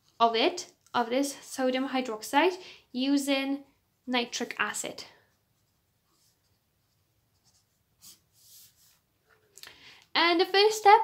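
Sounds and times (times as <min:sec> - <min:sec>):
marker scratching on paper: 0:04.4 - 0:09.1.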